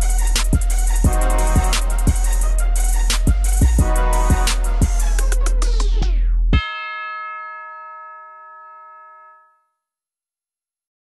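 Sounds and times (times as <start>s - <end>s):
bell-like chime note: 6.6s - 9.8s.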